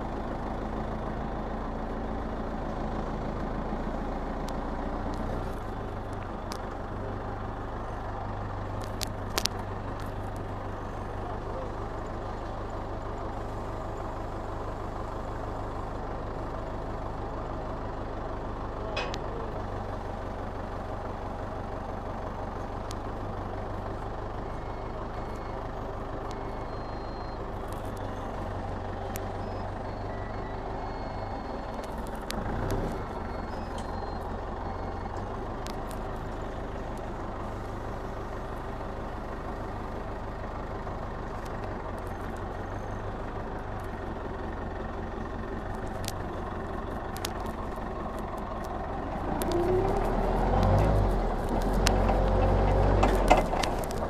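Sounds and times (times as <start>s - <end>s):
forklift engine humming: 0.0s - 54.0s.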